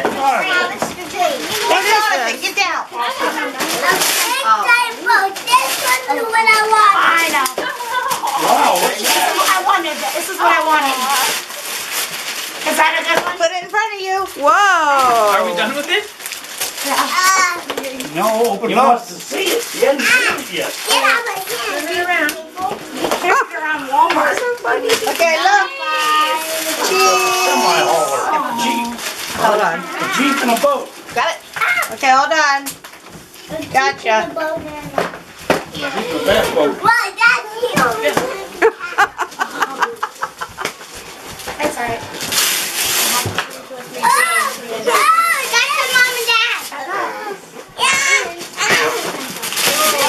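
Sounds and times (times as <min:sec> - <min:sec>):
wrapping paper tearing: 0:00.4 - 0:33.6, 0:39.1 - 0:50.0
children exclaiming: 0:25.4 - 0:29.0, 0:44.0 - 0:49.0
adult exclaiming: 0:26.8 - 0:29.0.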